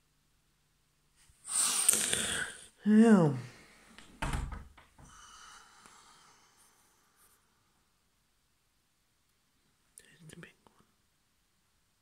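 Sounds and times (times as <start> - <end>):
faint whisper: 9.9 - 11.0.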